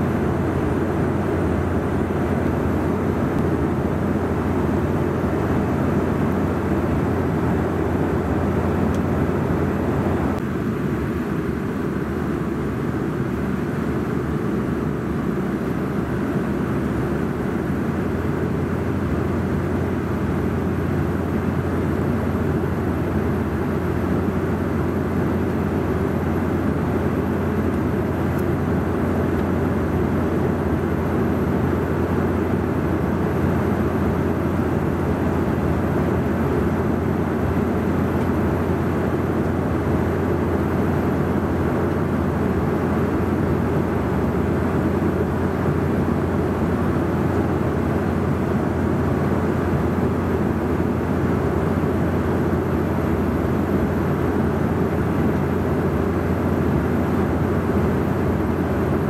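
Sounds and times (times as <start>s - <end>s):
jet cabin roar in flight: 0.0s - 59.0s.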